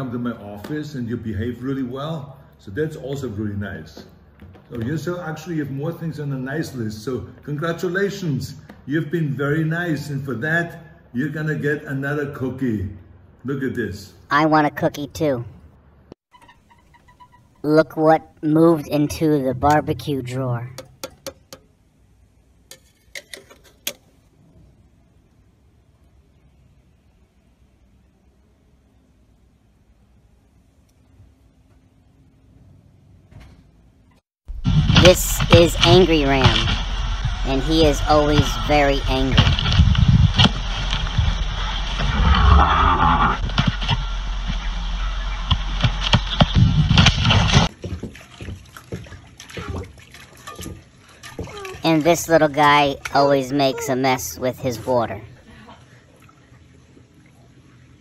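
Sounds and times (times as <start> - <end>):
water splashing in metal bowl: 45.5 - 52.6.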